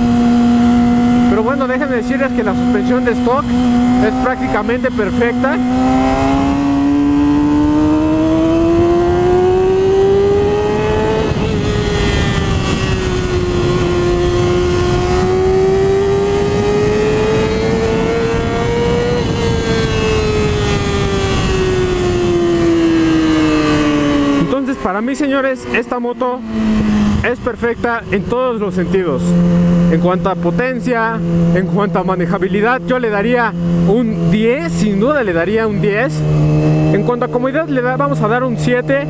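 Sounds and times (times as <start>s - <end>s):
motorcycle engine pulling hard: 0.0s - 39.0s
wind rush: 0.0s - 39.0s.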